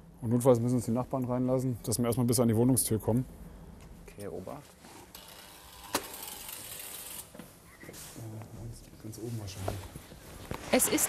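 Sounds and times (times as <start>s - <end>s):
electric door opener buzzing: 5.1s - 7.4s.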